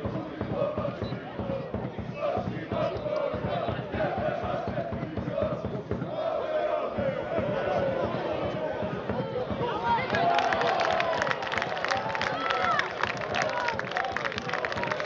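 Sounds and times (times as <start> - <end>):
crowd chanting: 0.0 - 15.0
crowd shouting: 0.0 - 15.0.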